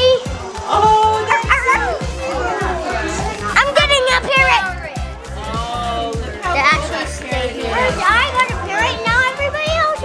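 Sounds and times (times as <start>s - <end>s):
music with a steady beat: 0.0s - 10.0s.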